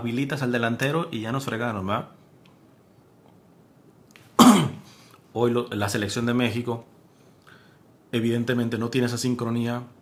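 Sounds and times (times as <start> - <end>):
man coughing: 4.4 - 4.9.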